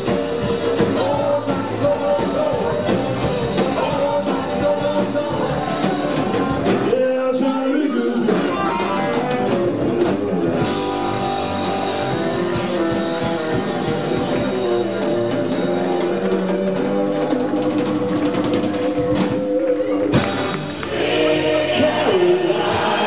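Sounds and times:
live rock and roll band: 0:00.0 - 0:23.0.

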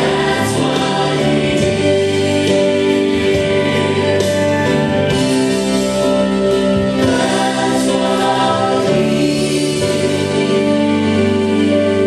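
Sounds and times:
voices singing with instruments: 0:00.0 - 0:12.0.

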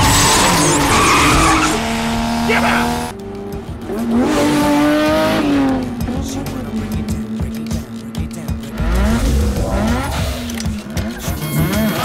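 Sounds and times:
sports car engine revving: 0:00.0 - 0:12.0.

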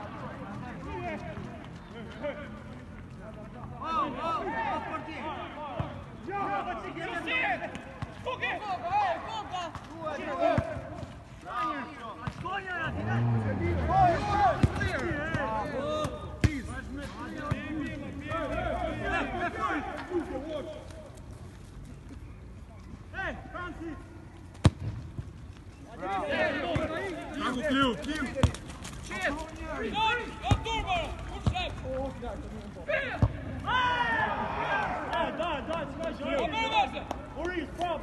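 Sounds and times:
men shouting: 0:12.9 - 0:16.0.

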